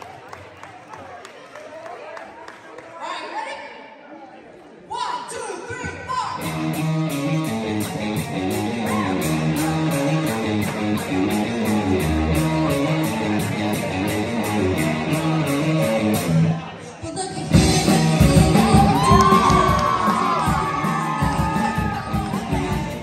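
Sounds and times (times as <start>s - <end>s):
electric guitar riff: 6.4s - 16.7s
keyboard: 6.4s - 23.0s
drums with quick cymbal beat: 17.6s - 23.0s.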